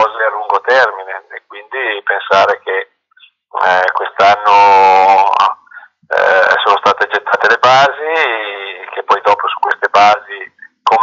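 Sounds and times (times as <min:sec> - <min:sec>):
man speaking over video call: 0:00.0 - 0:11.0.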